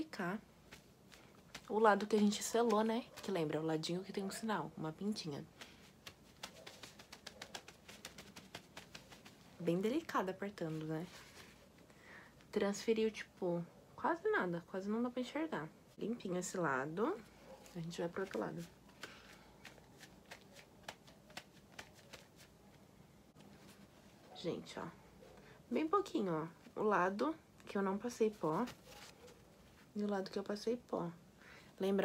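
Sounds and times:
paper napkin crinkling: 0.6 - 4.4, 5.1 - 11.8, 17.1 - 22.8, 28.2 - 30.0.

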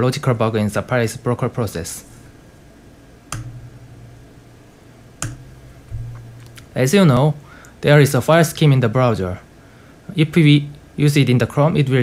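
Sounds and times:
faint low hum: 0.0 - 12.0
sharp clicker click: 3.3 - 3.6, 5.2 - 6.7.

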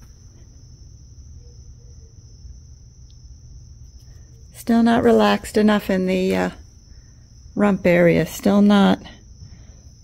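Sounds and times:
steady high-pitched whine: 0.0 - 10.0.

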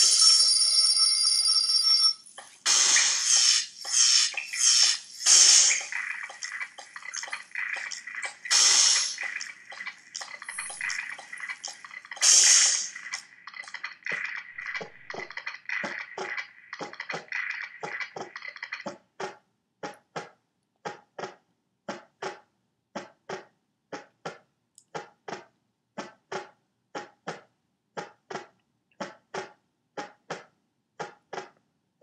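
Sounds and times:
ringing tone: 0.0 - 2.4
bursts of hissing noise: 2.5 - 14.7.

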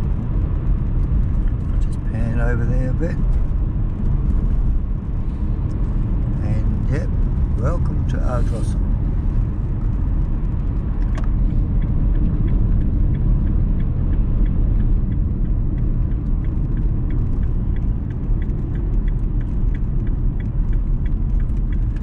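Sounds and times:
car engine and tyres rumbling: 0.0 - 22.0
faint regular ticking: 9.4 - 22.0.

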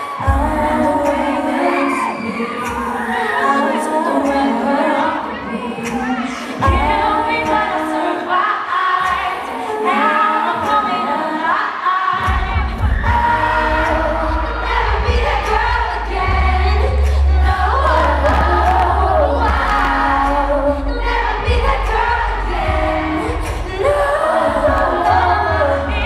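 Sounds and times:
female vocal group singing: 0.0 - 26.0
amplified backing track: 12.1 - 26.0.

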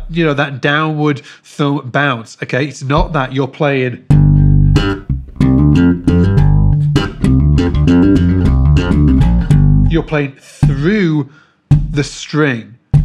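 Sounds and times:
slap bass guitar notes: 3.0 - 3.4, 4.1 - 11.1.

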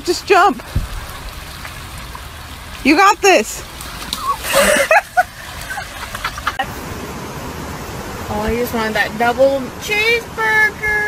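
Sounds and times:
water flowing over a weir: 0.0 - 11.0.

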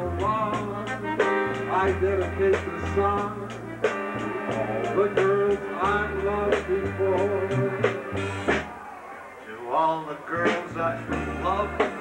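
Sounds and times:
man singing into a microphone: 0.0 - 8.0, 9.5 - 12.0
bass notes: 0.0 - 8.7
live band music: 0.0 - 8.7, 10.4 - 12.0.

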